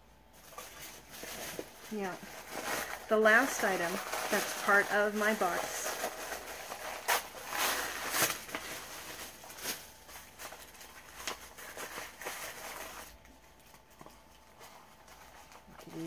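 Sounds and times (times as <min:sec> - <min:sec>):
paper packaging rustling: 0:00.3 - 0:16.0.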